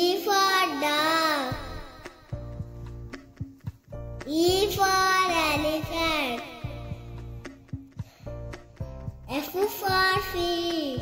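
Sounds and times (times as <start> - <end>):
child-like voice singing: 0.0 - 2.1, 9.3 - 11.0
backing track with steady beat: 1.0 - 11.0.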